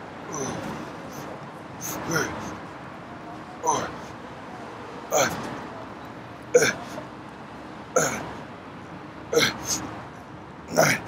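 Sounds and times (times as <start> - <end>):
man grunting with effort: 0.3 - 0.9, 1.8 - 2.5, 3.6 - 4.0, 5.1 - 5.5, 6.6 - 7.0, 8.0 - 8.3, 9.3 - 9.8, 10.7 - 11.0.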